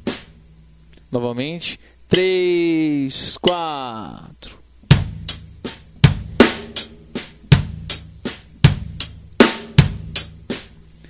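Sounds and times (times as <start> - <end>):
drum kit funk groove: 0.0 - 0.4, 4.9 - 10.8.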